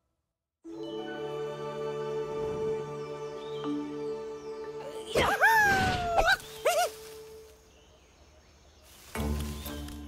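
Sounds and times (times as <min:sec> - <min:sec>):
background music: 0:00.6 - 0:07.9, 0:09.0 - 0:10.0.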